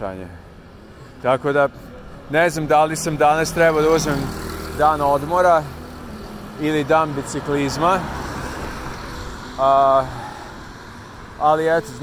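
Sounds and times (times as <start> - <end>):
street traffic noise: 0.0 - 12.0
vehicle passing: 1.0 - 12.0.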